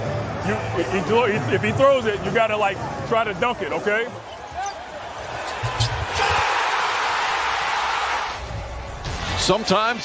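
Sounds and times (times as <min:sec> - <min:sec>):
crowd roaring: 0:04.2 - 0:08.6.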